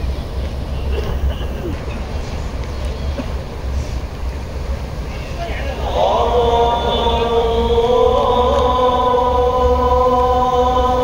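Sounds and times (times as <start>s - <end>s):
call to prayer over loudspeakers: 5.1s - 11.0s.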